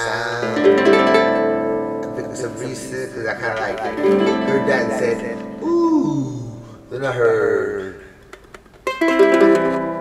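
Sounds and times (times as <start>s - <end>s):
nylon-string guitar chord ringing: 0.4s - 7.0s.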